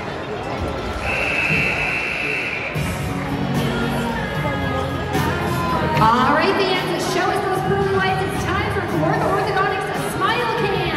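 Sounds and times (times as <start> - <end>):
crowd chatter: 0.0 - 10.9
music over public address: 0.0 - 10.9.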